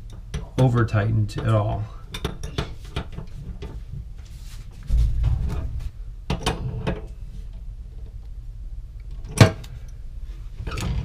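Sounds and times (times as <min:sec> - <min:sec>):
low rumble of handling: 0:02.7 - 0:11.0.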